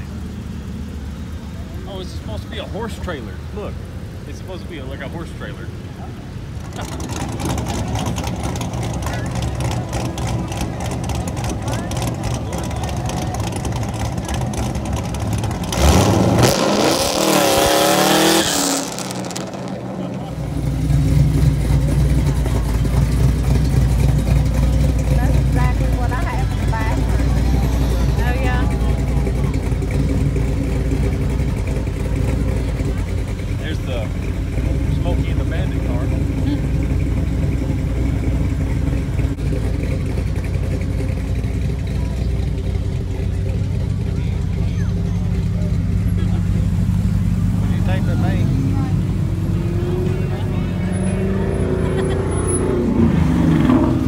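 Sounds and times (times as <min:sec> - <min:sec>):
car engines rumbling past: 0:00.0 - 0:54.0
car revving loudly: 0:06.8 - 0:22.4, 0:46.0 - 0:54.0.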